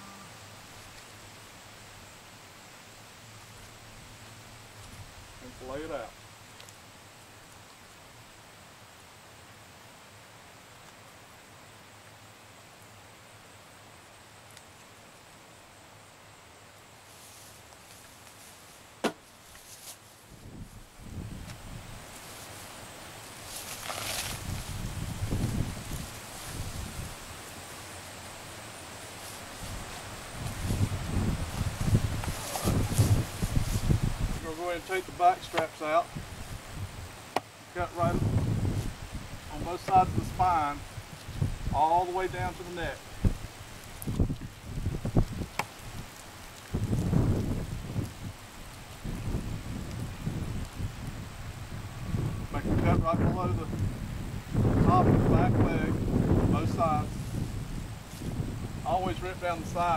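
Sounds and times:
rustling: 17.0s - 36.8s
wind gusting on microphone: 20.3s - 27.6s, 29.0s - 37.2s, 37.8s - 59.9s.

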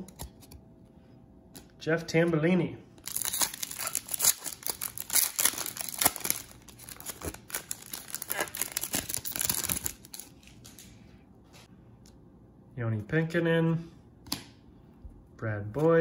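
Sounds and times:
foil wrapper tearing and crinkling: 3.0s - 10.4s.

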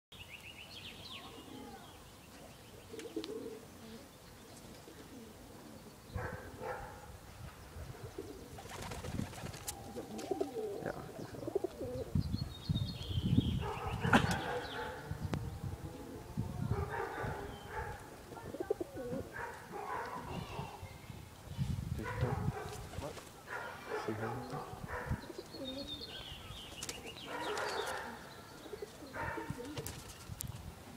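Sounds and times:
pigeons cooing: 1.2s - 20.8s, 22.0s - 30.1s.

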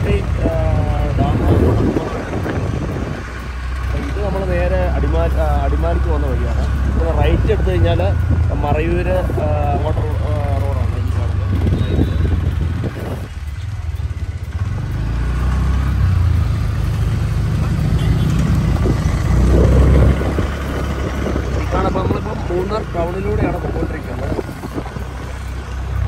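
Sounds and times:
wind noise on microphone: 0.0s - 4.1s, 6.8s - 10.1s, 11.4s - 14.6s, 17.6s - 26.0s
motorcycle engine rumble: 0.0s - 26.0s.

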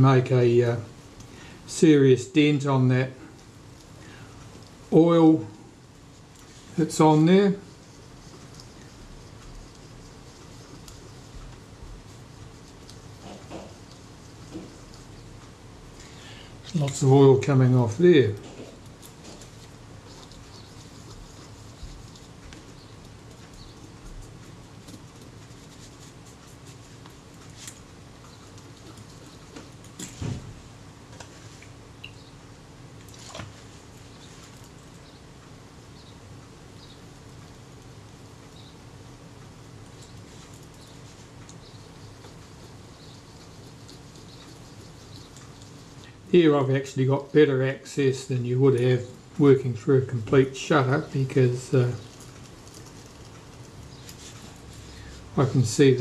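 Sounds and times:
steady low hum: 0.0s - 56.0s
cotton bud scratching metal blades: 1.2s - 32.4s, 39.6s - 56.0s.

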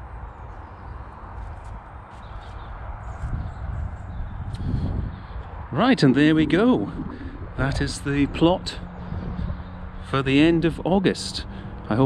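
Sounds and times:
wind buffeting microphone: 0.0s - 12.0s
soft footsteps: 1.3s - 4.1s.

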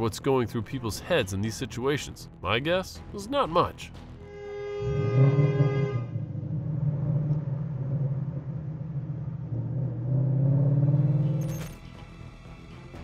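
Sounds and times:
car engine accelerating: 4.8s - 11.8s.

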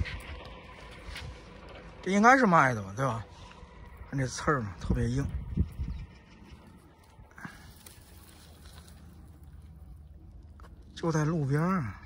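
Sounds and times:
dry rustling of wheat ears: 0.0s - 12.0s
low outdoor rumble: 0.0s - 12.0s.

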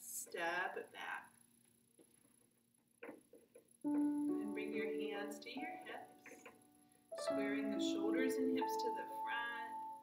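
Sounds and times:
plucked string music: 3.9s - 10.0s.

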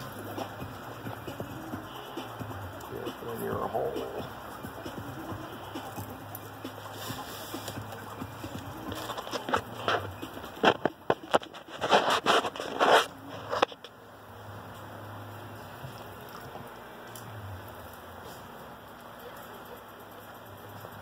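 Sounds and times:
low steady background hum: 0.0s - 21.0s
taps knocks and rustles of handling: 7.7s - 12.8s.

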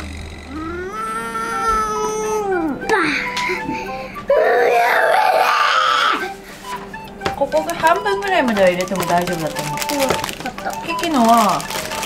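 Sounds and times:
girl crying: 0.6s - 6.4s.

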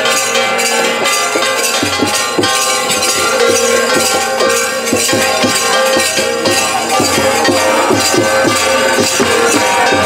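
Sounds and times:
hand bells ringing: 0.0s - 10.0s
low drum beats: 0.8s - 10.0s.

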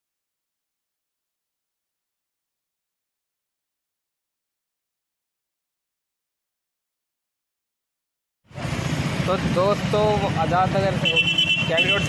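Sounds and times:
motorcycle running: 8.5s - 12.0s
man talking: 9.2s - 12.0s.

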